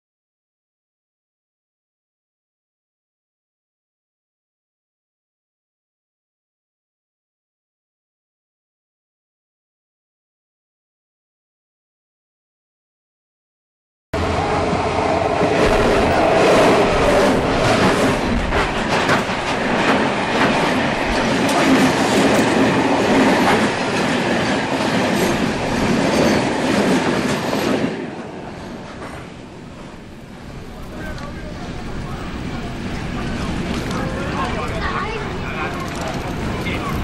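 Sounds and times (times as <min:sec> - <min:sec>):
freight train rumbling past: 0:14.2 - 0:37.0
wheels clicking over rail joints: 0:30.7 - 0:37.0.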